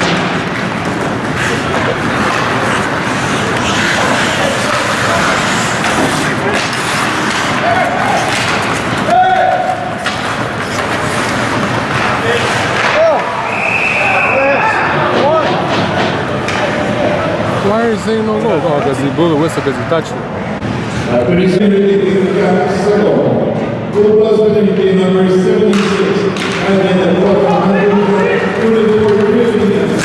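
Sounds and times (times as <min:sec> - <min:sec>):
spectators din: 0:00.0 - 0:22.8
people shouting: 0:07.4 - 0:10.0
referee whistle: 0:13.4 - 0:14.8.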